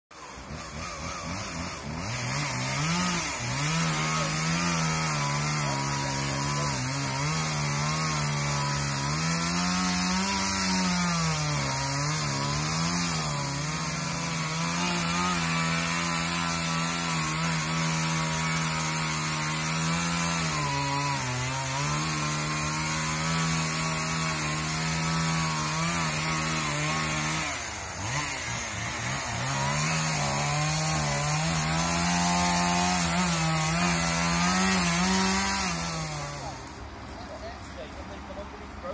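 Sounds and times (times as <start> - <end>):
chainsaw running at high revs: 0.1 - 38.9.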